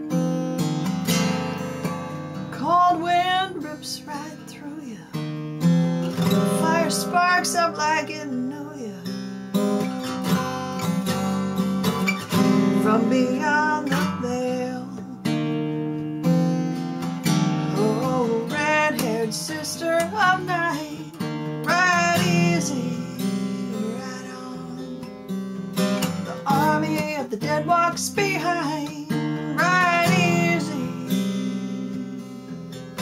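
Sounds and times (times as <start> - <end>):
acoustic guitar: 0.0 - 33.0
woman singing: 2.5 - 5.2, 6.5 - 9.2, 12.8 - 15.3, 17.7 - 25.1, 26.2 - 31.2.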